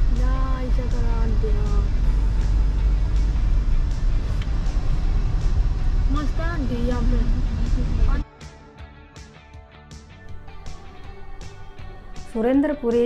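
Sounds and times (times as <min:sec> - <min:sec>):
car cabin road rumble: 0:00.0 - 0:08.2.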